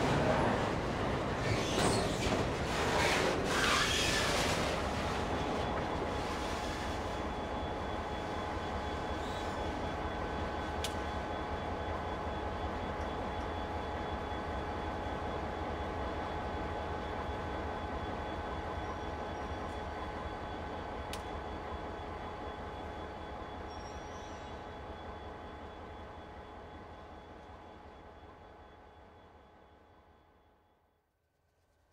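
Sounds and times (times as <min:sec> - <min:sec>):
freight cars rumbling: 0:00.0 - 0:06.1.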